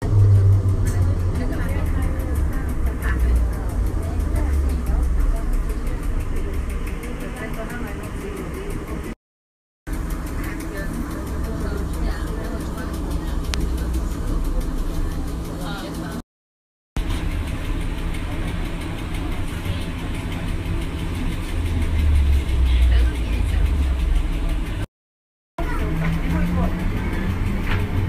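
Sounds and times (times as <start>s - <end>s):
trolleybus cabin rumble: 0.0s - 9.2s, 9.9s - 16.2s, 17.0s - 24.9s, 25.6s - 28.0s.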